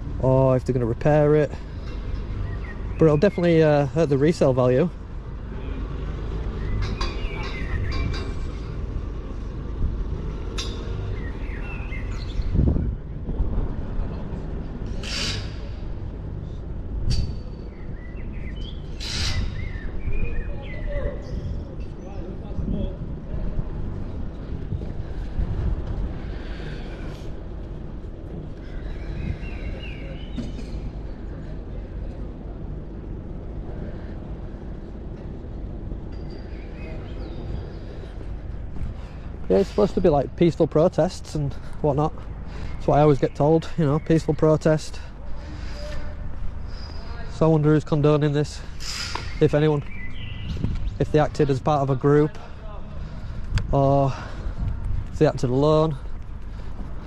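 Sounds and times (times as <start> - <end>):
steady low rumble: 0.0 - 20.6, 21.2 - 57.0
birds chirping: 0.3 - 13.3, 14.2 - 22.6, 23.8 - 57.0.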